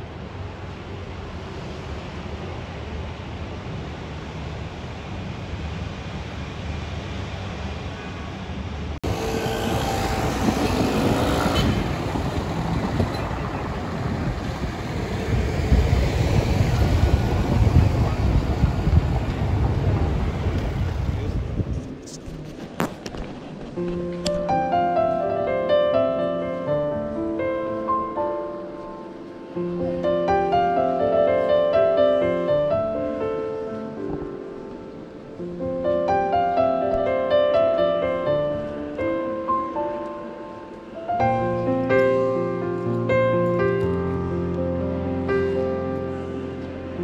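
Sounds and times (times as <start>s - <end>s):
road traffic of cars and scooters: 0.0s - 23.8s
voices of passers-by: 7.8s - 23.7s.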